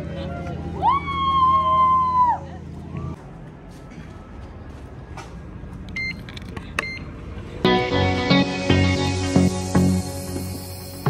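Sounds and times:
card reader beeps: 5.9 - 7.1.

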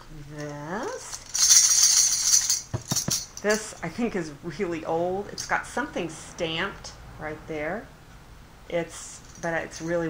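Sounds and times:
tambourine jingles rattling: 1.0 - 3.8.

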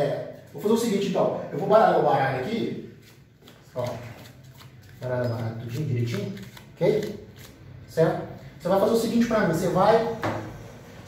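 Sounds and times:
playing cards shuffled by hand: 3.0 - 7.6.

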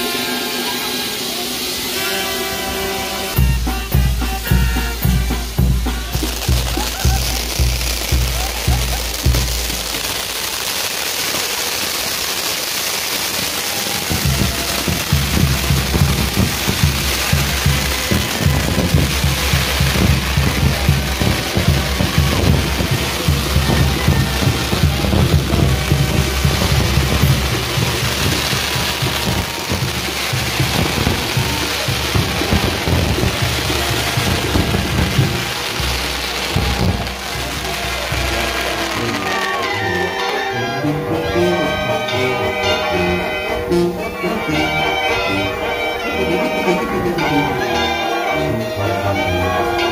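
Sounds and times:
music playing: 0.0 - 10.3, 14.1 - 49.9
fireworks hissing and crackling: 0.0 - 49.9.

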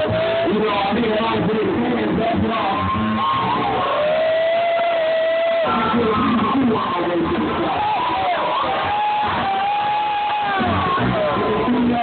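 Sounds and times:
crowd cheering: 0.0 - 12.0
live rap music: 0.0 - 12.0.

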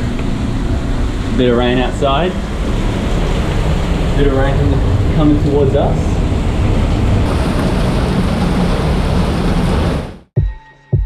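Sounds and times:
heavy rain on paving: 7.2 - 10.2.

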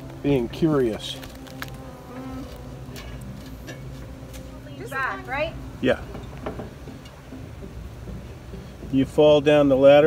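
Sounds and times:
low buzzing hum: 0.0 - 8.9.

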